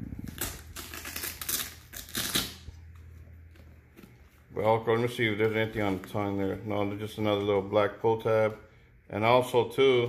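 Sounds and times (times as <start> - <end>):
velcro strap ripping open: 0.1 - 2.9.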